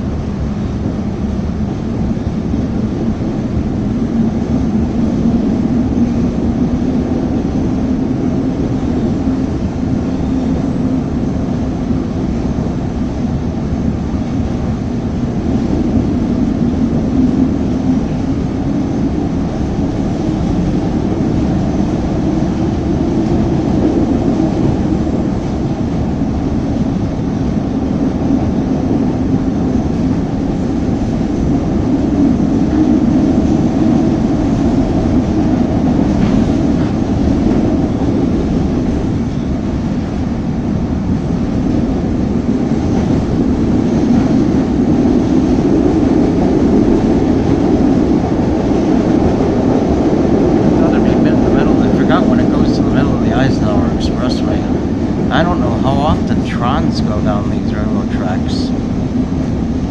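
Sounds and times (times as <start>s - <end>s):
train wheels rumbling on rails: 0.0s - 59.9s.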